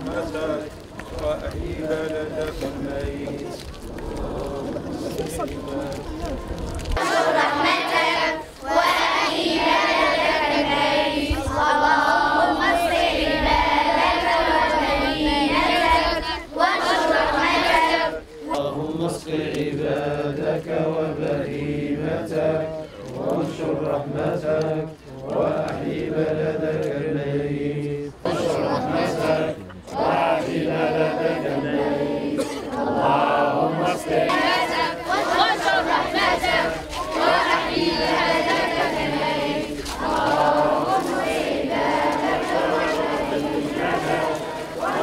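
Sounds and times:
crowd chanting in unison: 0.0s - 45.0s.

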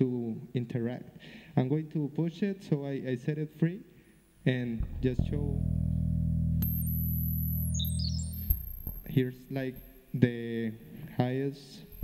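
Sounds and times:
low electric bass note: 4.7s - 9.0s
high electronic blips: 4.8s - 9.2s.

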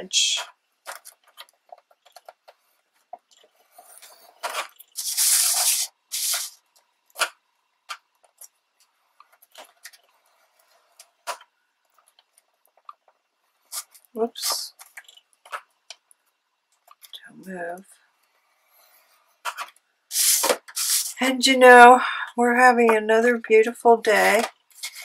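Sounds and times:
stylus scratching paper: 5.0s - 6.6s, 20.1s - 21.2s, 24.1s - 25.0s.

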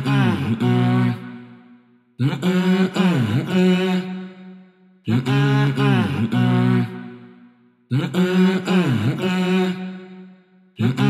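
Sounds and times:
deep chant-like vocal: 0.0s - 11.0s.

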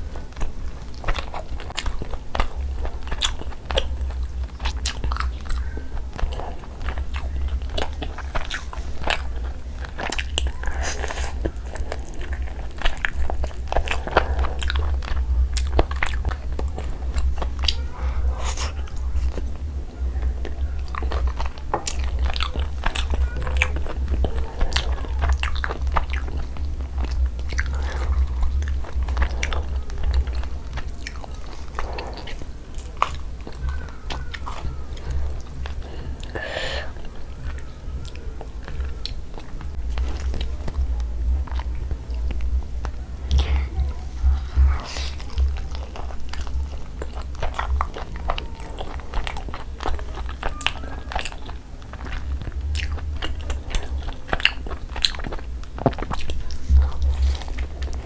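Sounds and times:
chewing and biting chicken: 0.0s - 58.0s
steady low hum: 0.0s - 58.0s.

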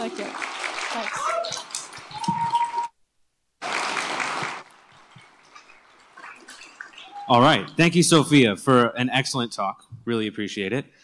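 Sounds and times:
audience applause: 0.0s - 2.9s, 3.6s - 5.0s.

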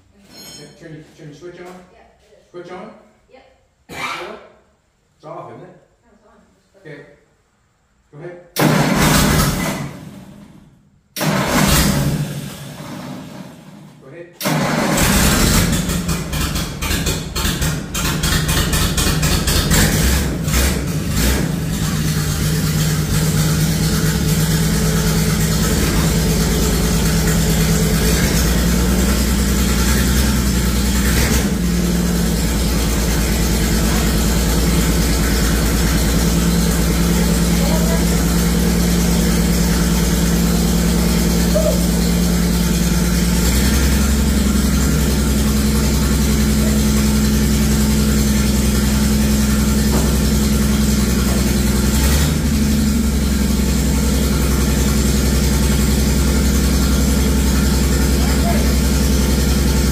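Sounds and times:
car engine idling: 8.6s - 59.9s.

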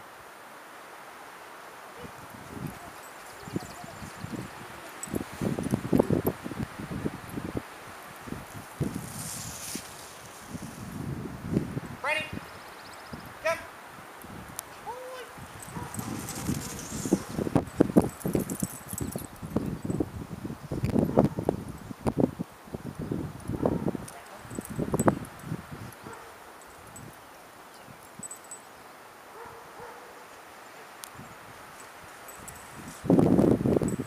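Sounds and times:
short voice call: 13.4s - 13.7s, 14.8s - 15.4s
dog's feet pattering: 14.6s - 19.6s.

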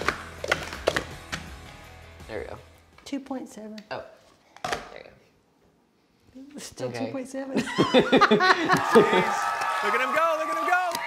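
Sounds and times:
plastic cups clacking: 0.0s - 1.5s
background music: 0.0s - 4.1s.

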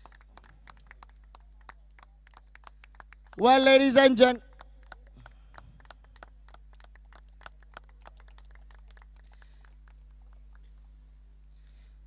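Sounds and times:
scattered hand claps: 0.0s - 11.1s
low electrical hum: 0.0s - 12.0s.

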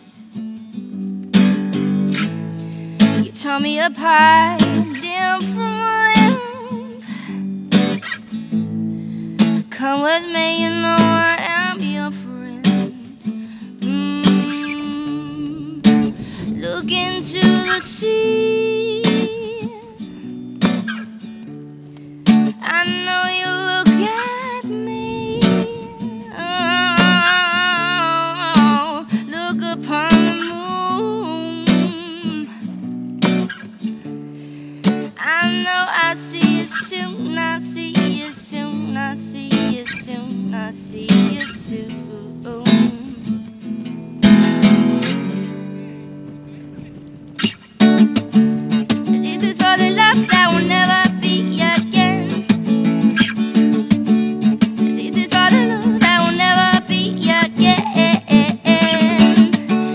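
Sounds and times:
strummed acoustic guitar: 0.0s - 59.9s
woman singing: 3.1s - 8.0s, 9.4s - 20.6s, 22.4s - 32.8s, 35.1s - 43.8s, 48.9s - 53.3s, 54.6s - 59.9s.

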